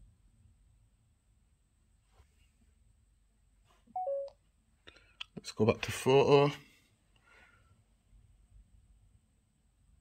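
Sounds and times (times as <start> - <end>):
two-note camera beep: 4.0 - 4.3.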